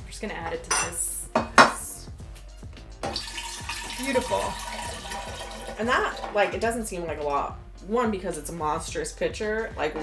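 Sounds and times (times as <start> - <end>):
background music: 0.0 - 10.0
liquid pouring into a pitcher: 3.1 - 6.3.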